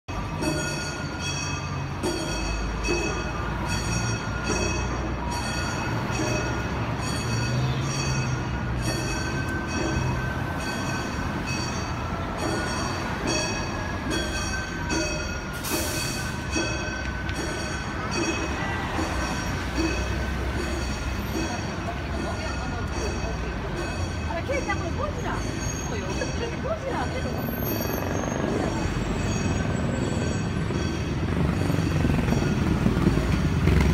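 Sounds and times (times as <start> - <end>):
street traffic rumble: 0.1 - 33.9.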